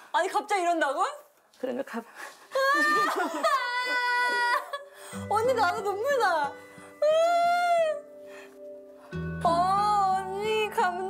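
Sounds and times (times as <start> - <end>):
woman whimpering cry: 2.5 - 4.9, 7.0 - 8.1
soft background music: 4.2 - 11.0.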